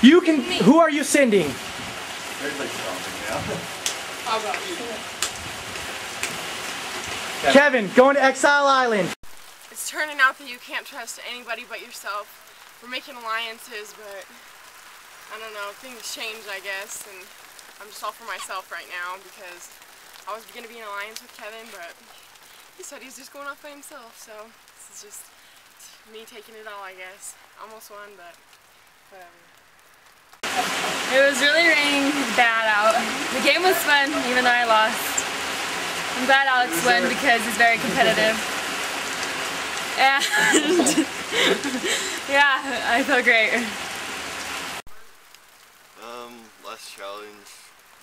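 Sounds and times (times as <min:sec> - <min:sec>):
steady rain falling: 0:00.0 - 0:48.0
person saying um: 0:36.3 - 0:38.4.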